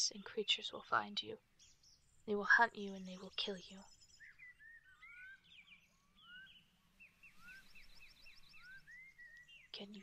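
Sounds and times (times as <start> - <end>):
faint birdsong: 0.0 - 10.0
short bird chirps: 3.8 - 10.0
rising bird whistle: 4.2 - 6.6, 7.2 - 9.5.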